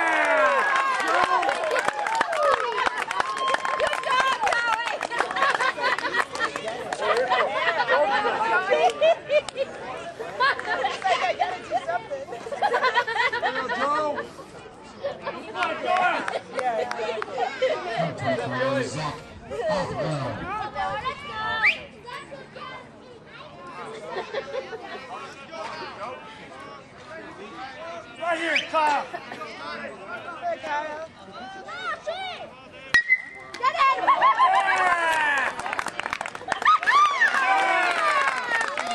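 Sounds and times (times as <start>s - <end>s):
spectators shouting: 0.0s - 4.8s
spectators chattering: 0.0s - 38.9s.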